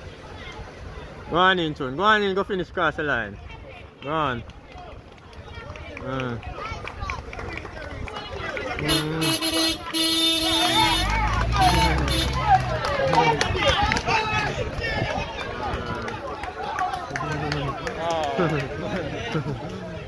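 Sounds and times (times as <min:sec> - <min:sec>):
crowd shouting and cheering: 0:05.6 - 0:20.0
horn blasts: 0:08.8 - 0:12.7.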